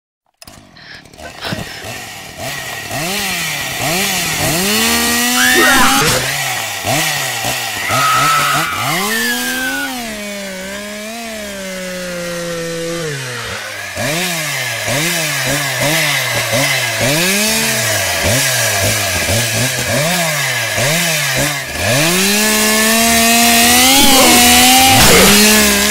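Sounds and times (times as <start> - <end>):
chainsaw engine revving: 0.3 - 25.9.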